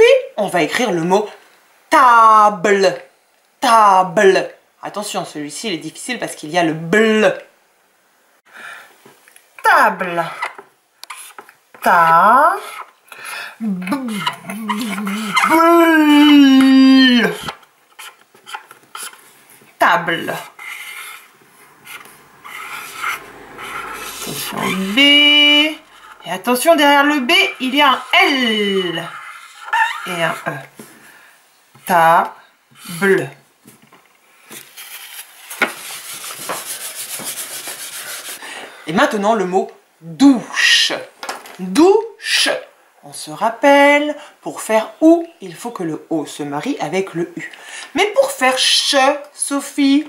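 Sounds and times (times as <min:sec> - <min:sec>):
marker squeaking on whiteboard: 0:10.2 - 0:11.5, 0:12.1 - 0:13.0, 0:13.8 - 0:19.3, 0:20.2 - 0:30.6
rubbing on dry-erase slate: 0:10.3 - 0:11.5, 0:12.6 - 0:13.0, 0:14.0 - 0:15.7, 0:17.2 - 0:19.3, 0:20.2 - 0:30.6, 0:34.7 - 0:38.4
person holding long vowel: 0:13.6 - 0:17.3.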